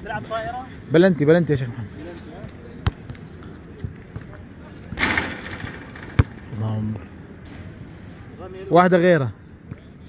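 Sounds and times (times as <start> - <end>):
basketball bouncing on court: 4.9 - 6.5
ball striking rim and backboard: 5.0 - 6.5.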